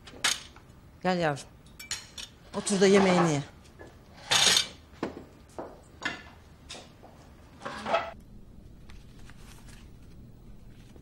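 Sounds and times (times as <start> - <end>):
dishes and cutlery clinking: 1.6 - 3.5.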